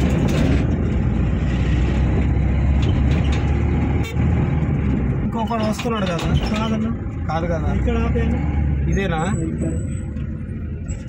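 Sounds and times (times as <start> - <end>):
wind noise on microphone: 0.0 - 6.7
vehicle engine rumble: 0.0 - 11.0.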